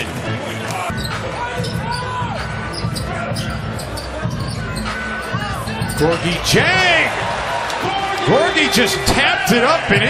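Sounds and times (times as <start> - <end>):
crowd hum: 0.0 - 10.0
high squeak: 0.9 - 6.1.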